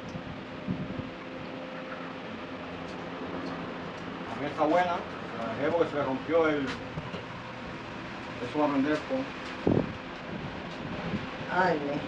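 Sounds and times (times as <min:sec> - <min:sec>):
low mechanical hum: 0:00.0 - 0:12.0.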